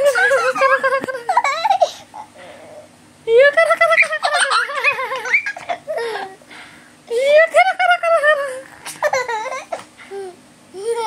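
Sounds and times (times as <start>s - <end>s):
baby giggling: 0.0s - 2.3s, 3.5s - 6.4s, 7.2s - 11.0s.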